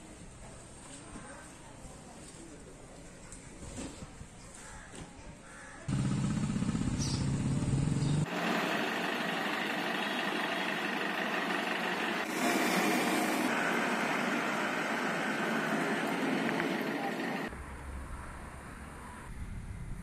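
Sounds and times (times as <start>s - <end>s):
faint market ambience: 0.0s - 8.3s, 13.7s - 20.0s
birds calling: 4.4s - 13.5s
traffic noise: 5.8s - 20.0s
vehicle engine running low: 5.9s - 17.6s.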